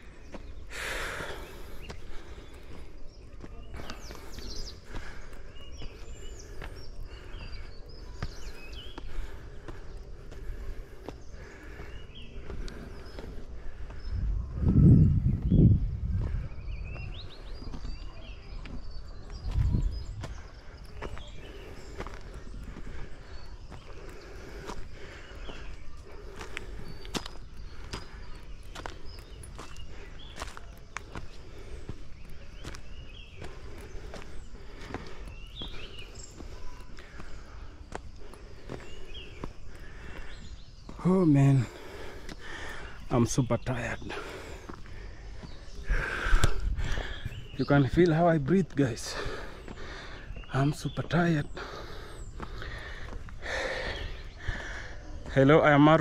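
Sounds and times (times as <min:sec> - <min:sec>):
person breathing hard: 0:00.0 - 0:17.6, 0:19.8 - 0:43.1, 0:43.9 - 0:47.6, 0:49.0 - 0:50.5, 0:51.4 - 0:55.4
footsteps on dirt path: 0:00.0 - 0:56.0
low rumbles on microphone: 0:14.0 - 0:18.0, 0:18.6 - 0:20.5.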